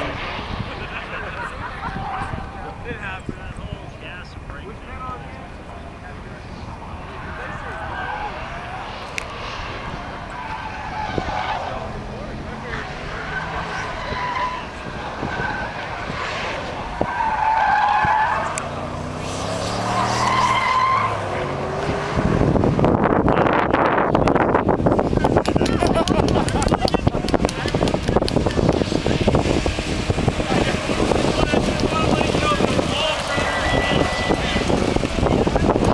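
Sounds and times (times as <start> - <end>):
car engines accelerating: 0.0 - 35.9
loud rushing noise: 18.1 - 35.9.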